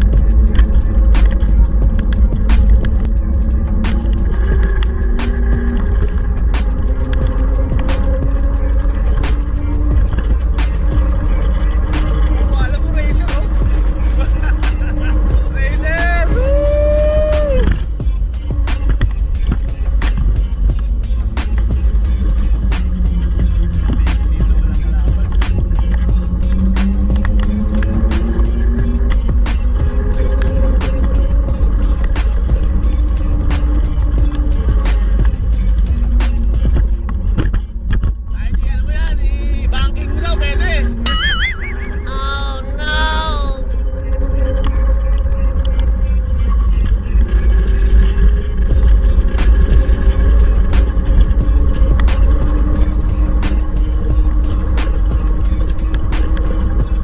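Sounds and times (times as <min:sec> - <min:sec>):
music with sliding melody: 0:00.0 - 0:57.0
scooter road noise: 0:00.0 - 0:57.0
wind rumble: 0:00.0 - 0:57.0.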